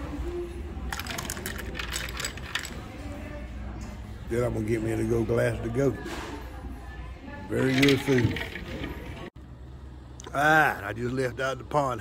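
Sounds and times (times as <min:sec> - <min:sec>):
ice cubes clinking: 0:00.9 - 0:02.8, 0:07.5 - 0:09.2.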